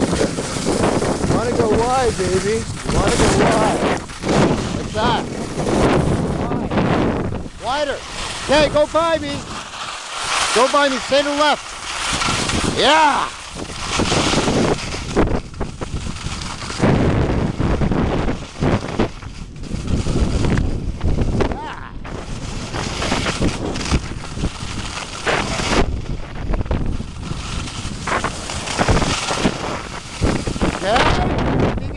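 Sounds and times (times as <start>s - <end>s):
skis carving on snow: 0.0s - 31.9s
wind rushing over microphone: 0.0s - 31.9s.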